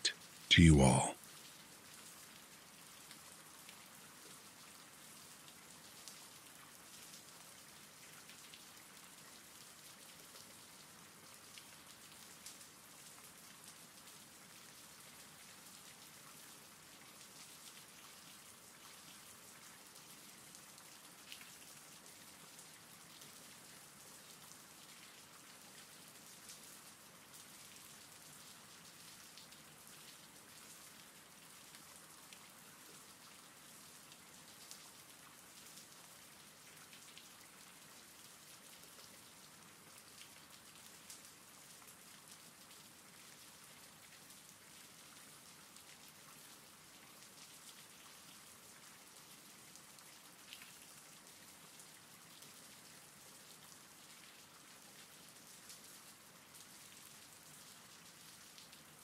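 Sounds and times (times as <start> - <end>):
faint steady rain: 0.0 - 59.0.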